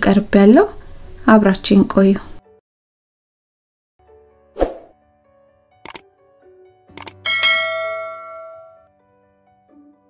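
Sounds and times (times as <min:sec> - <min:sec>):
soft music: 0:00.0 - 0:02.6, 0:04.0 - 0:10.0
short swish: 0:04.6 - 0:04.9
sharp clicks: 0:05.8 - 0:06.0, 0:06.9 - 0:07.2
bell-like ding: 0:07.2 - 0:08.9.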